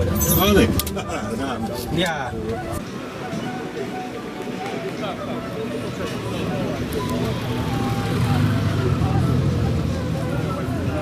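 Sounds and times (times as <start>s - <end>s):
motorcycle engine passing by: 7.3s - 10.4s.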